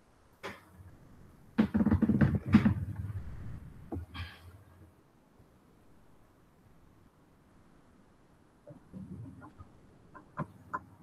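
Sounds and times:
low rumble: 3.0 - 4.1.

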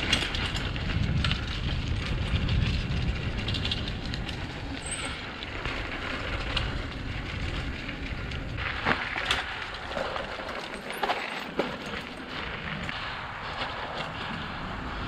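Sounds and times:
wind on microphone: 0.0 - 10.1
bike rattling clicks: 0.0 - 13.0
bike tyres rumbling on dirt: 0.0 - 15.0
leaves and twigs under wheels: 0.0 - 15.0.

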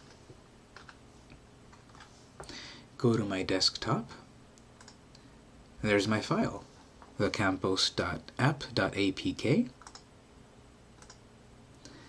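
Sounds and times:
computer keyboard clicks: 0.8 - 1.0, 4.8 - 5.0, 9.8 - 10.1, 11.0 - 11.2.

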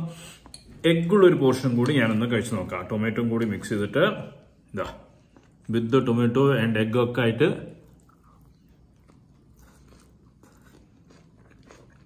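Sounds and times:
faint chewing: 5.1 - 5.8, 7.8 - 12.0.

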